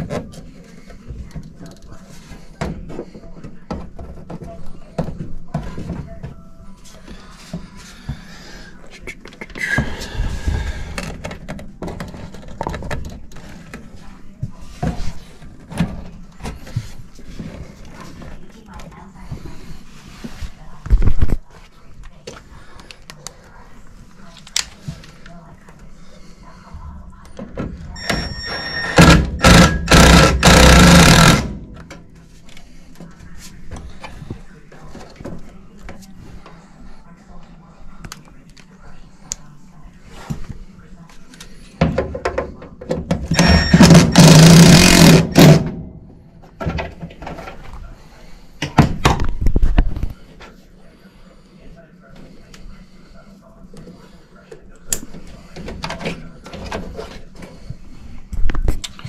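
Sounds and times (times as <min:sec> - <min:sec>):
cordless drill driving screws: 0:43.3 - 0:45.6.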